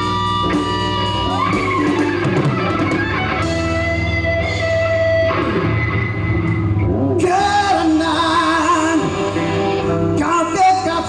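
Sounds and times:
bass guitar: 0.0s - 11.0s
electric guitars: 0.0s - 11.0s.

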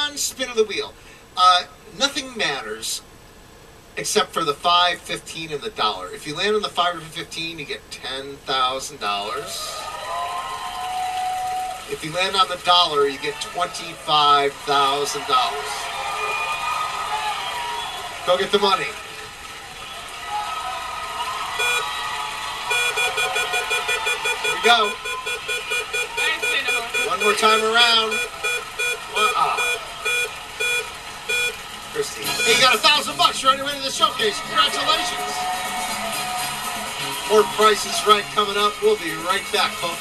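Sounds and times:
studio audience cheering: 9.3s - 40.0s
high-pitched screams: 20.2s - 30.3s
short electronic beeps: 21.6s - 21.9s, 22.7s - 31.6s, 32.2s - 33.0s.

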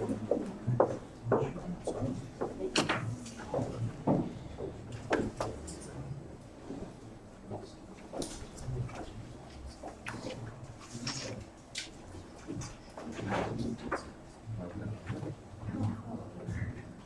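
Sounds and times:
low indistinct voices: 0.0s - 17.0s.

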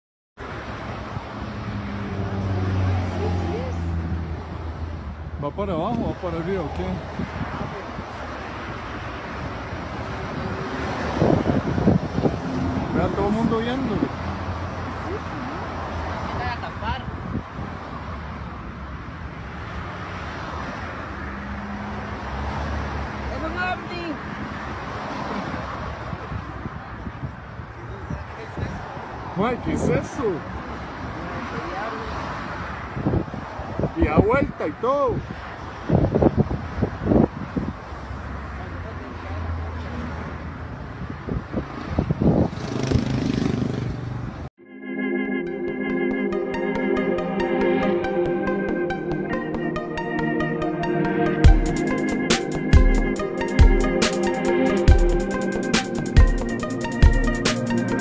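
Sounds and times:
road traffic noise: 0.4s - 58.0s
wind rumbling on microphone: 0.8s - 19.0s, 32.5s - 37.9s, 40.8s - 44.4s
electronic music with organ chords: 44.6s - 58.0s.

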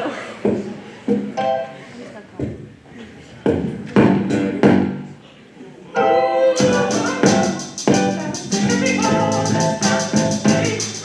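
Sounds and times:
keyboard: 6.0s - 11.0s.

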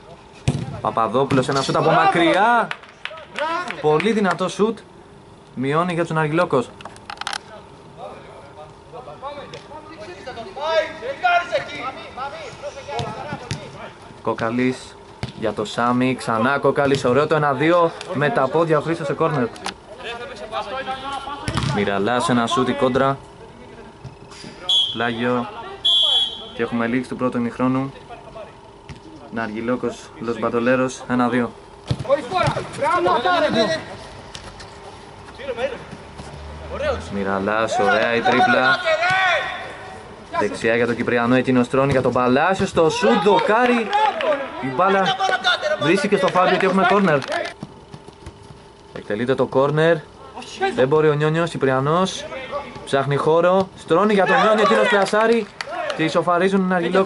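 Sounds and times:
men calling out: 36.7s - 40.6s, 54.0s - 56.3s.

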